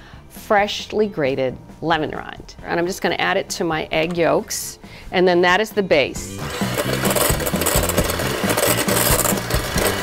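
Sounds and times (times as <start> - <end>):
electric hand mixer whirring: 6.4 - 10.0.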